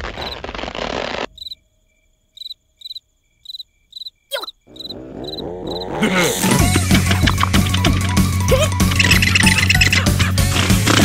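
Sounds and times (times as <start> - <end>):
crickets chirping: 0.1 - 0.4, 1.3 - 6.0, 8.8 - 10.0.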